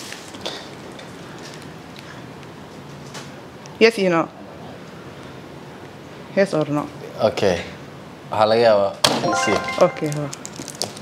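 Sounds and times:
answer button click: 9.2 - 10.4
electronic jingle: 9.2 - 10.4
person speaking: 9.2 - 10.4.

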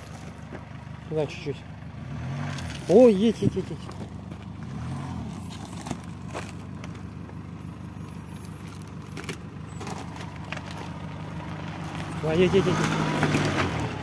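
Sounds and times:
truck engine running at low revs: 0.0 - 14.0.

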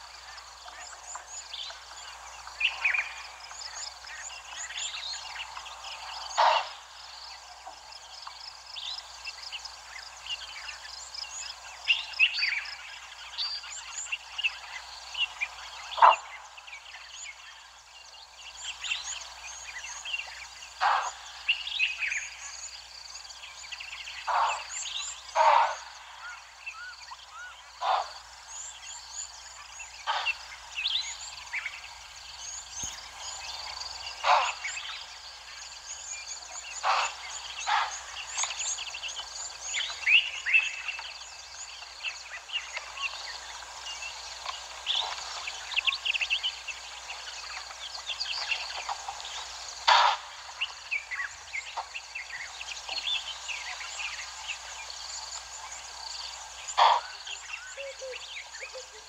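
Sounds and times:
birds chirping chorus: 0.0 - 59.0.

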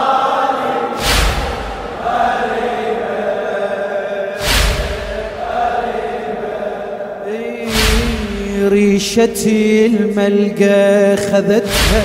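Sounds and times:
men chanting a lament: 0.0 - 12.0
crowd chest-beating slaps: 1.0 - 2.9, 4.4 - 6.4, 7.7 - 8.6, 11.7 - 12.0.

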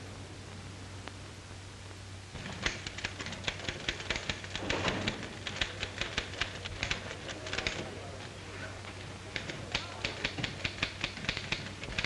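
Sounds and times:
typewriter keys clacking: 2.4 - 7.8, 9.3 - 12.0.

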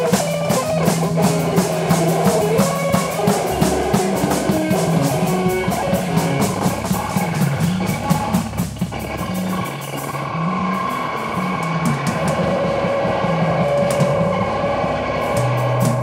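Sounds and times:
experimental rock music: 0.0 - 16.0.

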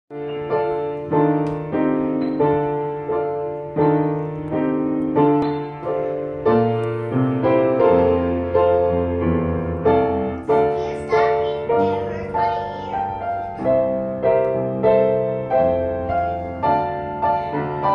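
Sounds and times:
upright piano playing slowly: 0.1 - 17.9.

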